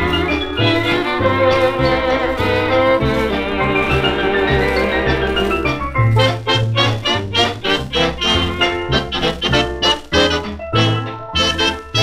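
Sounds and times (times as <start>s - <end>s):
swing dance orchestra playing: 0.0s - 12.0s.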